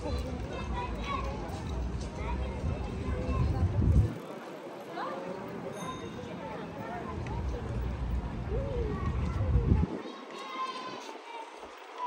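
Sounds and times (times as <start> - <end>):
distant voices of passers-by: 0.0 - 12.0.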